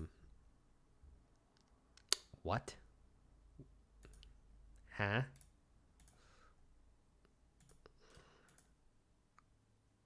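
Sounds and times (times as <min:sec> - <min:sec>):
computer mouse clicks: 0:01.4 - 0:02.3, 0:04.0 - 0:04.4, 0:05.3 - 0:06.2, 0:07.2 - 0:08.8.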